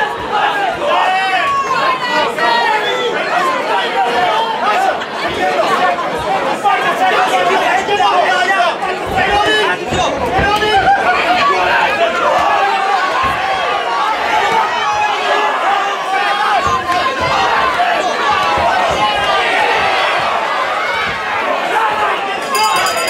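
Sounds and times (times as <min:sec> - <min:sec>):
crowd chatter in a hall: 0:00.0 - 0:23.0.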